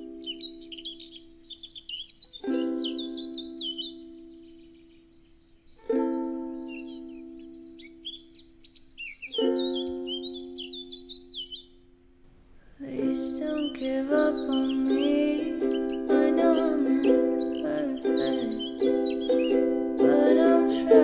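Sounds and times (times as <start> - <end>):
birdsong chirping: 0.0 - 21.0.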